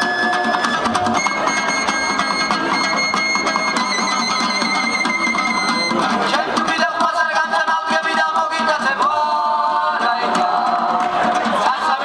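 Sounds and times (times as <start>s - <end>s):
plucked lutes playing: 0.0s - 6.9s
high melody line: 0.0s - 7.5s.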